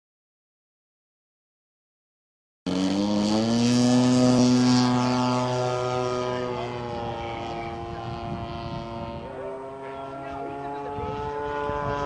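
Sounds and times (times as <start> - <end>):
model airplane motor and propeller: 2.7 - 12.0.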